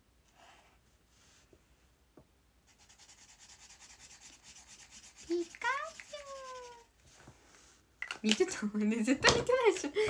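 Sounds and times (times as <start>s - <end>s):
pen scribbling on paper: 2.8s - 6.9s.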